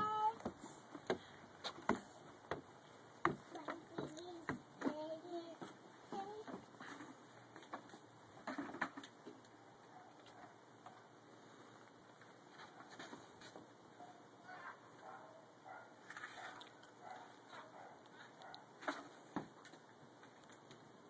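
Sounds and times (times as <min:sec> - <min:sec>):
faint child's voice: 0:00.0 - 0:00.5, 0:03.5 - 0:07.0
footsteps on wooden steps: 0:00.0 - 0:07.0.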